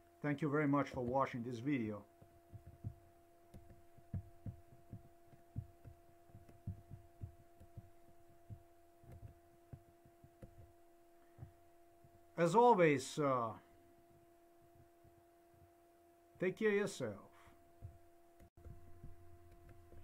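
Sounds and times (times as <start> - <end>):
faint electrical hum: 0.0 - 20.0
soft low thumps: 2.0 - 12.4, 17.7 - 20.0.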